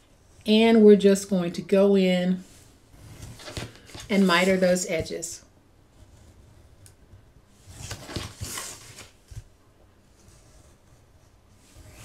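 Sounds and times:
paper rustling: 0:03.1 - 0:05.0, 0:07.7 - 0:09.5.

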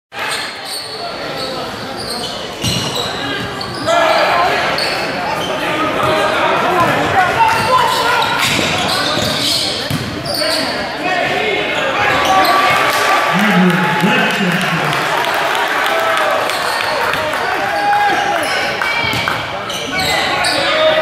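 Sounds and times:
people shouting in a hall: 0:10.9 - 0:19.2.

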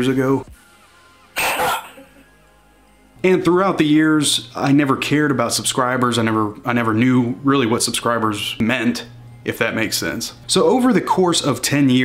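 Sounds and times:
person making sharp cough-like burst: 0:01.4 - 0:02.2.

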